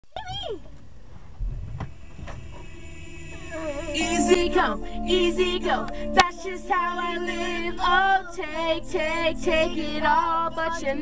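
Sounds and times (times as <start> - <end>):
person singing: 2.1 - 11.0.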